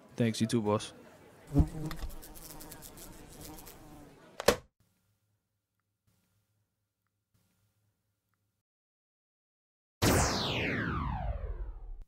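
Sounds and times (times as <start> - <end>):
housefly buzzing: 1.5 - 4.0.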